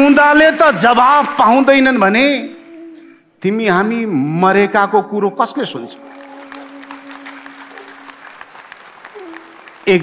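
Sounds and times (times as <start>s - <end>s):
soft stage music: 0.0s - 10.0s
audience applause: 5.9s - 10.0s.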